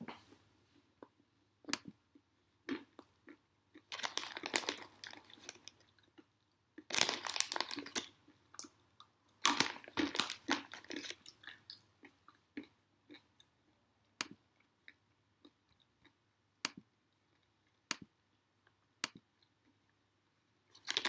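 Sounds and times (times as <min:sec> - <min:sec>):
close crunching and crackling: 0:03.7 - 0:12.7, 0:20.7 - 0:21.0.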